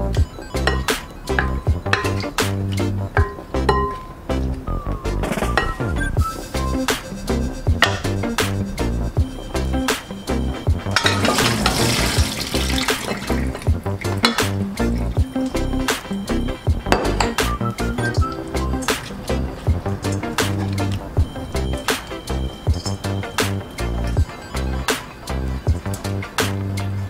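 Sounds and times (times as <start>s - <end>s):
background music with steady beat: 0.0s - 27.0s
water pouring into sink: 10.9s - 13.8s.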